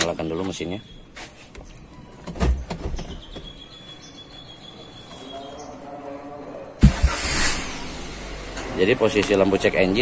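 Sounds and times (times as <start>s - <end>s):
car engine starting and idling: 6.8s - 10.0s.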